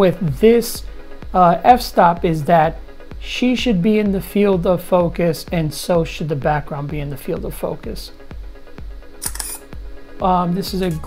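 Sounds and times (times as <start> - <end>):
background music with low beat: 0.0 - 11.0
camera shutter click: 9.2 - 9.7.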